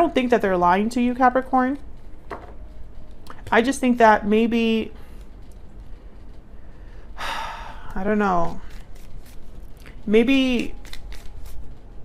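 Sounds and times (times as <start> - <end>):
person breathing in: 6.6 - 8.0.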